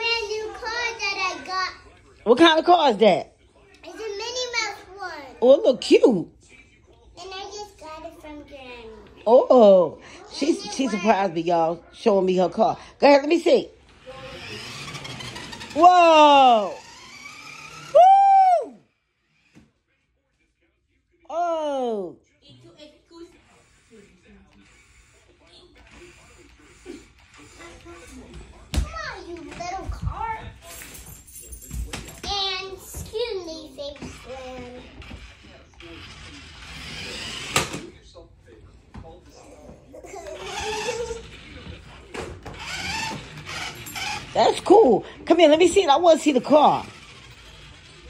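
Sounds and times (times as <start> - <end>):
toy car motor whirring: 0.0 - 1.6, 3.8 - 5.0, 13.3 - 19.7, 22.8 - 31.0, 32.2 - 38.0, 40.0 - 48.0.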